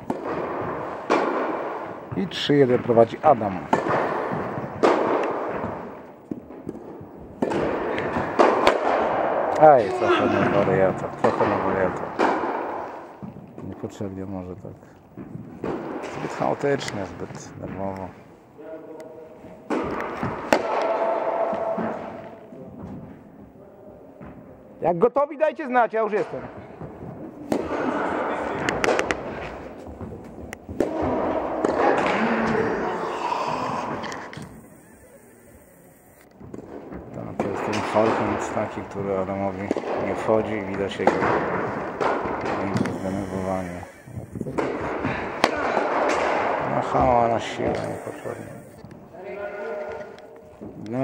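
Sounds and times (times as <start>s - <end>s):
tennis ball knock in hall: 0.0s - 14.2s, 15.1s - 24.6s, 26.1s - 50.8s
indistinct voices: 9.6s - 11.4s, 31.9s - 36.3s, 42.4s - 48.8s.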